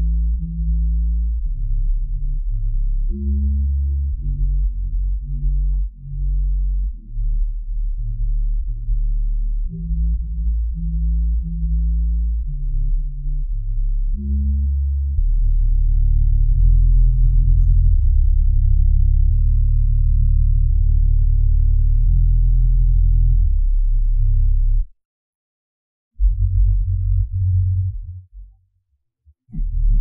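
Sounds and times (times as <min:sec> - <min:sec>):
bass line: 0:00.0 - 0:24.9, 0:26.2 - 0:28.6, 0:29.3 - 0:30.0.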